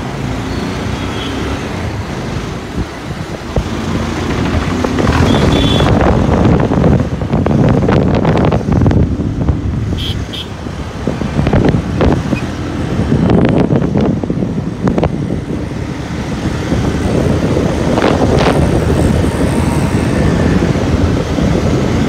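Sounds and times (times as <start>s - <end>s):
motorcycle engine: 0.0s - 7.0s, 15.1s - 21.2s
wind rumbling on microphone: 1.6s - 22.0s.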